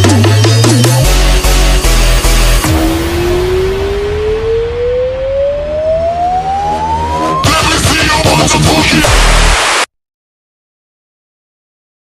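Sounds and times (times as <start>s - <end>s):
synth tone gliding upward: 2.6s - 7.5s.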